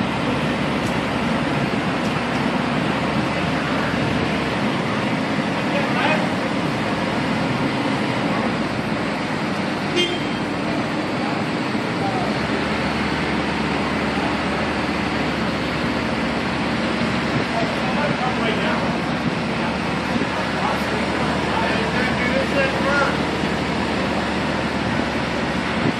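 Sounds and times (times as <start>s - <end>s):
crane diesel engines running: 0.0s - 25.9s
short horn toot: 9.9s - 10.5s.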